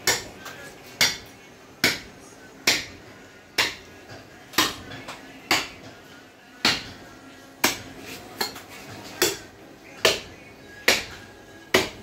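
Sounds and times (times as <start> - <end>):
blade chopping meat and bone: 1.0 - 3.0, 3.6 - 6.0, 6.6 - 7.0, 7.6 - 8.6, 9.2 - 12.0.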